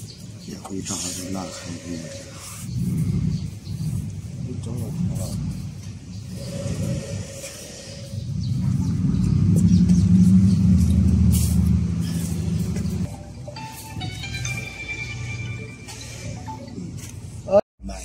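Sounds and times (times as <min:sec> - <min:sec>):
low mechanical rumble: 0:08.3 - 0:13.3.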